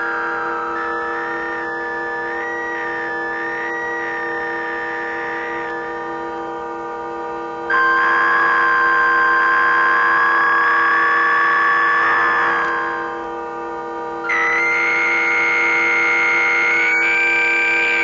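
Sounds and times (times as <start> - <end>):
high bending electronic tone: 7.6 - 18.0
electronic drone music: 7.7 - 18.0.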